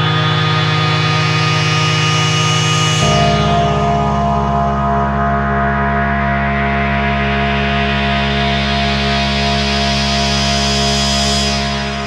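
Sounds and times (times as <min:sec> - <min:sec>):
synthesizer drone chord: 0:00.0 - 0:12.0.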